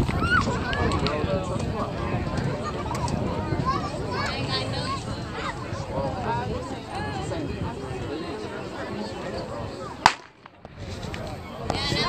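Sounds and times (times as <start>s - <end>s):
spectators chattering: 0.0s - 12.0s
starter's pistol shot: 10.1s - 10.8s.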